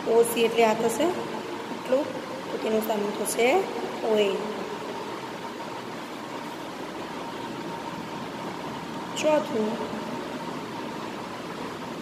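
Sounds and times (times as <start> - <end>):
faint fan whine: 0.0 - 12.0.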